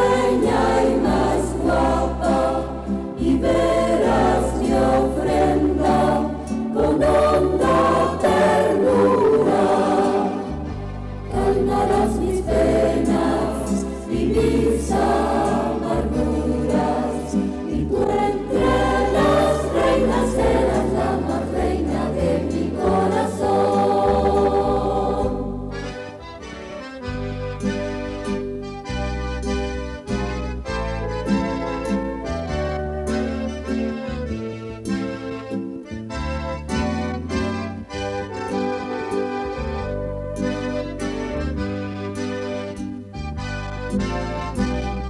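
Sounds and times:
choir singing a hymn: 0:00.0 - 0:26.4
instrumental accompaniment with bass line: 0:00.0 - 0:45.0.

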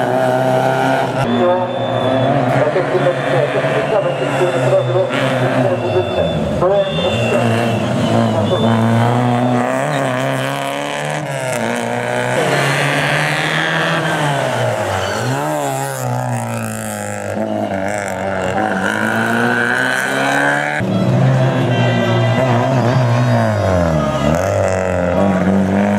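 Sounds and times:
rally car engine revving: 0:00.0 - 0:25.9.

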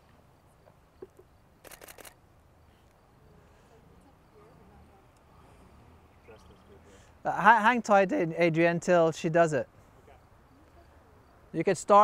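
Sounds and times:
camera shutter clicks: 0:01.6 - 0:02.2.

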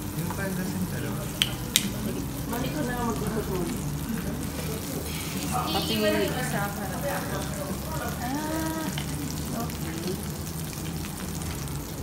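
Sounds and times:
butter sizzling on grill plate: 0:00.0 - 0:12.0.

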